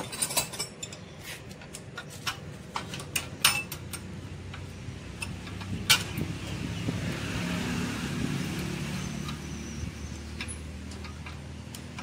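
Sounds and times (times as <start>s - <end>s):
metallic clicks of spanners and ratchet: 0.0s - 6.7s, 8.5s - 12.0s
motor vehicle running: 2.5s - 12.0s.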